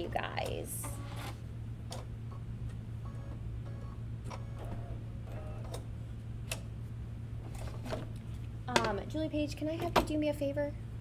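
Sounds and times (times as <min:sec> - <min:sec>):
embroidery machine humming and ticking: 0:00.0 - 0:07.0.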